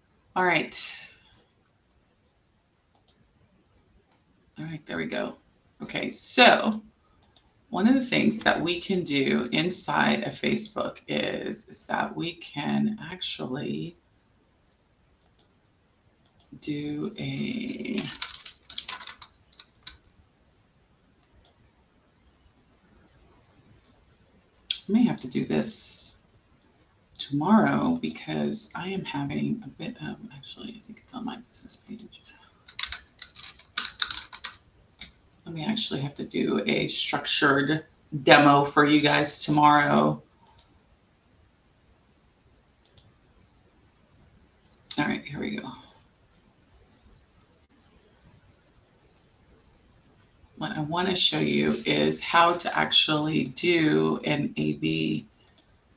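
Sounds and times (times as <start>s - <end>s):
computer mouse clicks: 2.9s - 3.2s, 7.2s - 7.5s, 15.2s - 15.6s, 16.2s - 16.5s, 17.9s - 20.2s, 21.2s - 21.6s, 31.8s - 35.2s, 40.4s - 40.8s, 42.8s - 43.2s, 55.4s - 55.8s.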